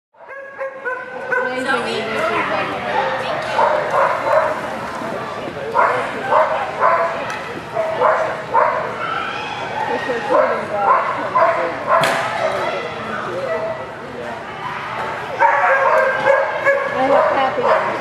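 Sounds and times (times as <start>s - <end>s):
dog barking: 0.2s - 1.7s, 3.0s - 4.6s, 5.8s - 7.2s, 7.8s - 9.0s, 10.3s - 12.2s, 15.4s - 18.0s
people's voices: 0.9s - 18.0s.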